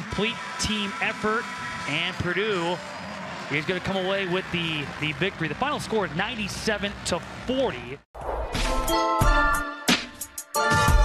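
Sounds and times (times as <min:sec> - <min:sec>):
faint arena crowd noise: 0:00.0 - 0:08.0
sports commentator talking: 0:00.0 - 0:08.1
outro music: 0:08.2 - 0:11.0.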